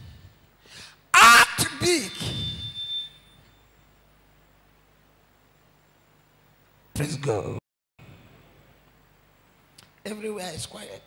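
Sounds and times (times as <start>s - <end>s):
faint steady low hum: 0.0s - 11.0s
echo of a spoken word: 1.1s - 2.5s.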